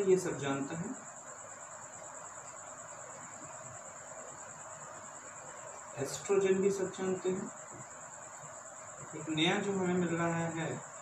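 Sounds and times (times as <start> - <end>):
crickets trilling: 0.0 - 11.0
faint background hiss: 0.0 - 11.0.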